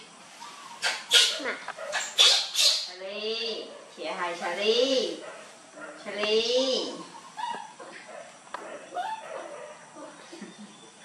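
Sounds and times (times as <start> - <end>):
baby monkey squealing: 0.8 - 2.9, 7.4 - 7.8.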